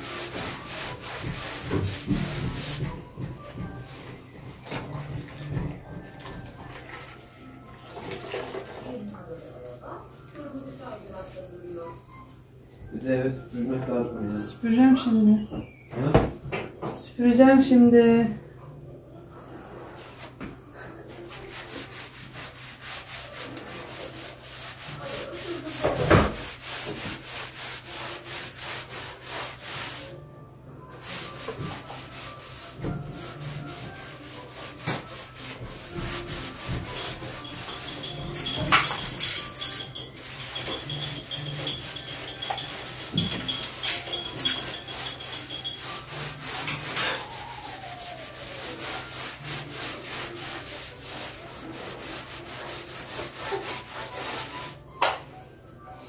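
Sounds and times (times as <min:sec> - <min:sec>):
cloth scrubbing a wall: 0:00.0 - 0:03.0, 0:21.1 - 0:30.2, 0:30.9 - 0:54.8.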